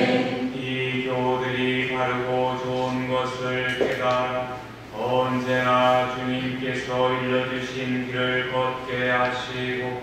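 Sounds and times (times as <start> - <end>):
man chanting: 0.4 - 10.0.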